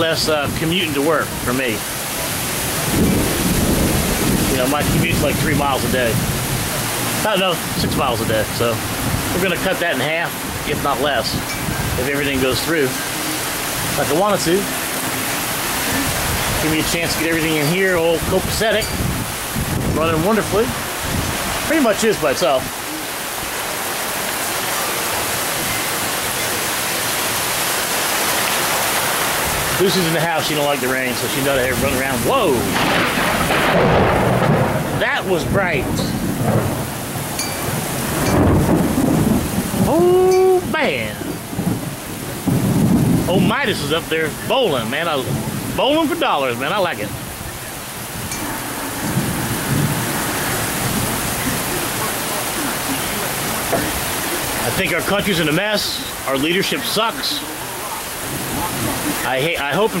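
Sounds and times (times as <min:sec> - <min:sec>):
heavy rain pouring: 0:00.0 - 1:00.0
water streaming off roof: 0:00.0 - 1:00.0
low rumble of thunder: 0:00.1 - 0:23.7, 0:31.2 - 0:55.0, 0:58.0 - 0:59.2.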